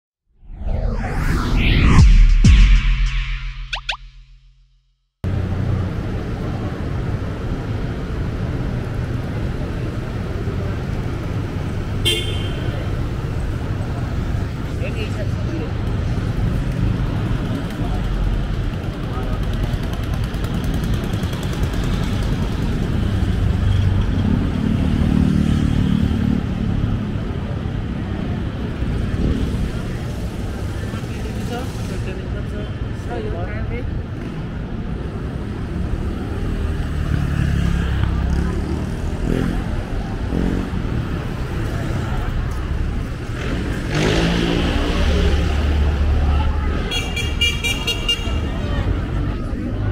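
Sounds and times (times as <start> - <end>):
traffic running past: 5.3 - 49.9
vehicle horn toot: 12.0 - 12.6.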